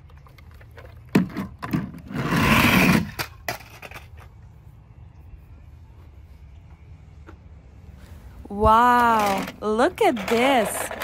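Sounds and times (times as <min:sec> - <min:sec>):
toy sliding down plastic slide: 0:02.0 - 0:04.1.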